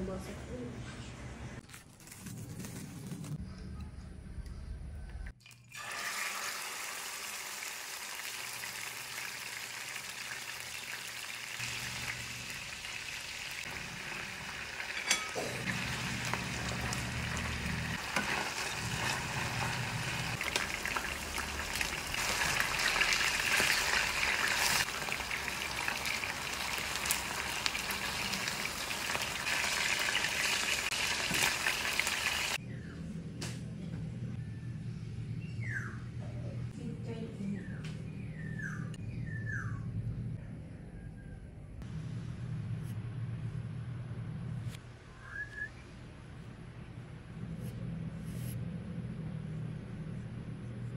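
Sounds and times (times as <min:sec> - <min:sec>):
chicken sizzling in hot oil: 0:05.8 - 0:32.6
low hum: 0:13.7 - 0:22.6, 0:32.6 - 0:50.9.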